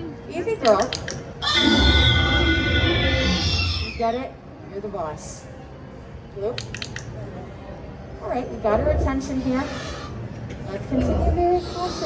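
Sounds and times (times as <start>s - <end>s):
dinosaur roar screech: 1.4s - 4.0s.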